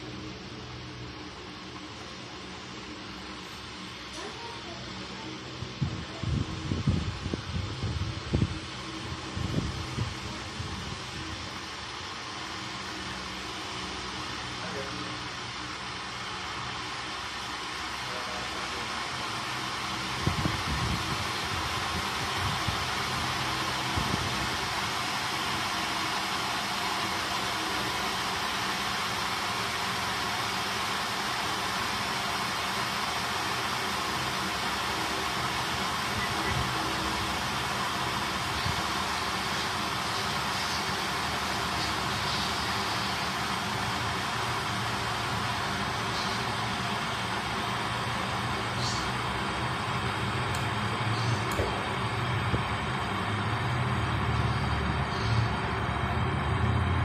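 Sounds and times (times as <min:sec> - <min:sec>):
electric kettle hissing and rumbling: 0:00.0 - 0:57.0.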